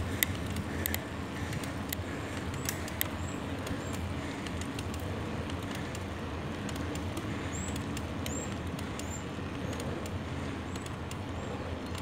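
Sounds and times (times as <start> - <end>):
road and wind noise: 0.0 - 12.0
vehicle engine drone: 0.0 - 12.0.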